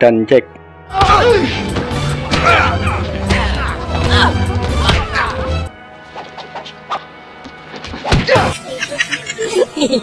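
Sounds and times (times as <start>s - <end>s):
film soundtrack music: 0.0s - 10.0s.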